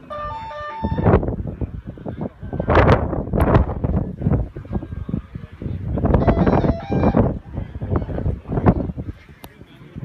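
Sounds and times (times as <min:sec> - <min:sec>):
wind buffeting microphone: 0:00.0 - 0:10.0
electronic two-tone signal: 0:06.2 - 0:07.2.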